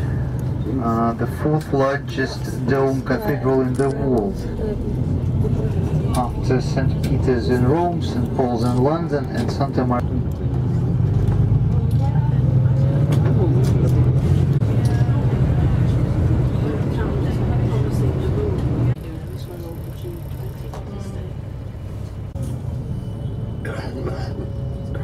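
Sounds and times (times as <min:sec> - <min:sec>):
coach engine and road rumble: 0:00.0 - 0:25.0.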